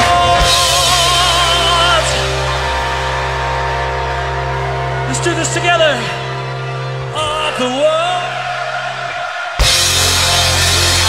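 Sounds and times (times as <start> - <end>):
low bass drone: 0.0 - 7.6, 9.6 - 11.0
electric guitar ringing: 0.0 - 11.0.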